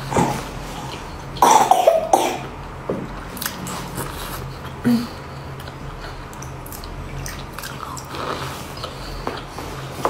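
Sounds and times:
person coughing: 0:01.4 - 0:02.5.

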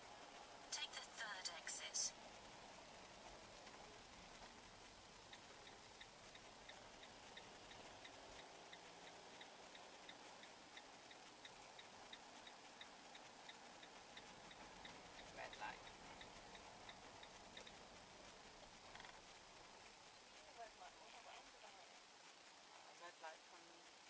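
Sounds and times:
turn signal ticking: 0:00.0 - 0:20.6.

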